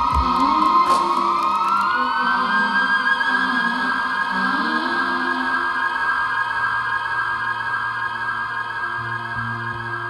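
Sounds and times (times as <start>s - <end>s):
theremin music: 0.0s - 10.0s.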